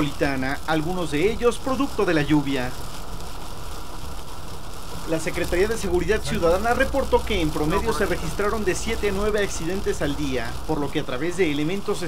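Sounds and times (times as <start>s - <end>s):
car driving through heavy rain: 0.0s - 12.0s.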